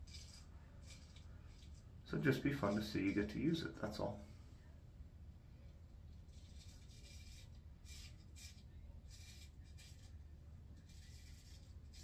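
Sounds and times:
straight razor scraping stubble: 0:00.0 - 0:03.3, 0:06.3 - 0:10.2, 0:10.8 - 0:12.0.

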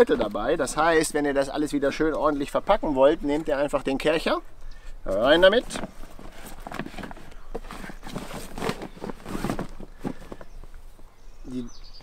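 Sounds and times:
rustling of storage bag: 0:05.1 - 0:10.7.

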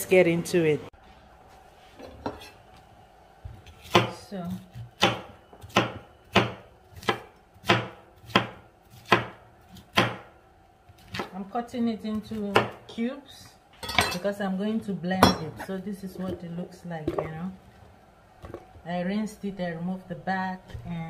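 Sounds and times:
knife chopping on wooden board: 0:03.8 - 0:04.2, 0:05.0 - 0:10.3.

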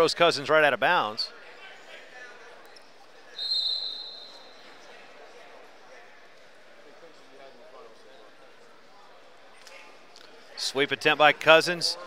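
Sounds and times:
crowd murmur in gym: 0:00.0 - 0:12.0
referee's whistle: 0:03.3 - 0:04.8.

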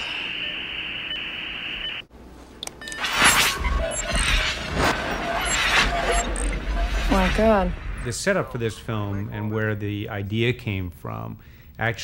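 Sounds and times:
telephone line hiss: 0:00.0 - 0:02.1.

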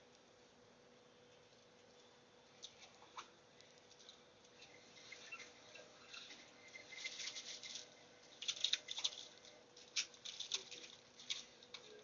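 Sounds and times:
faint steady hum: 0:00.0 - 0:12.0
light clicks and rustles: 0:07.0 - 0:12.0.

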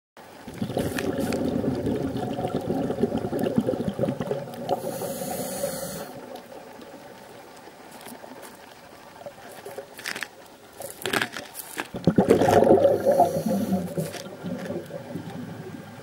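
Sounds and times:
muffled underwater sloshing: 0:00.2 - 0:16.0.

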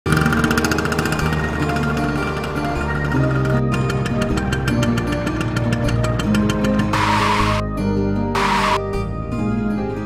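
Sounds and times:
motorcycle engine rattle: 0:00.1 - 0:07.0
background music with held notes: 0:00.1 - 0:10.0.

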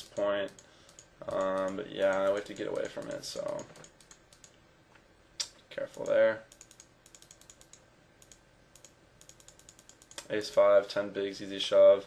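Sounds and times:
computer keys clicking: 0:00.0 - 0:04.6, 0:05.4 - 0:10.3.

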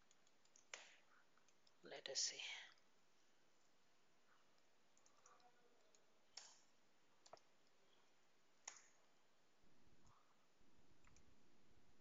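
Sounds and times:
computer mouse clicks: 0:00.0 - 0:01.8, 0:04.6 - 0:07.8, 0:08.6 - 0:09.0, 0:11.0 - 0:11.3.

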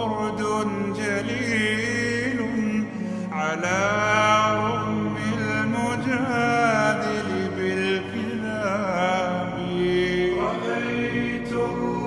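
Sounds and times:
low vocal drone: 0:00.0 - 0:12.0
man singing reverberant held notes: 0:00.0 - 0:12.0.

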